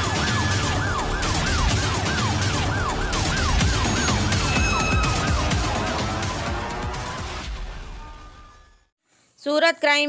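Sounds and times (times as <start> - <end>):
music with heavy beat: 0.0 - 7.9
siren sound effect: 0.0 - 8.9.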